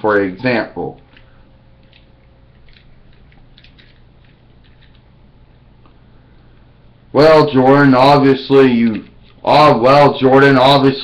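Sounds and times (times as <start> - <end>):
low steady hum: 0.0 - 11.0
handling rustles and clicks: 0.9 - 6.0, 8.8 - 9.5.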